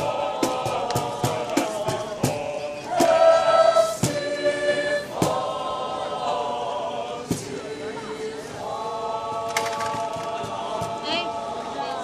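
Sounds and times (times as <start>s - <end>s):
sharp percussive beats: 0.0s - 5.5s, 9.3s - 11.3s
choir singing in harmony: 0.0s - 12.0s.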